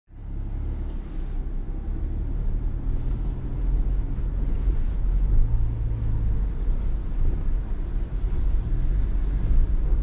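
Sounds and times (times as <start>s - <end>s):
car driving rumble: 0.1s - 10.0s.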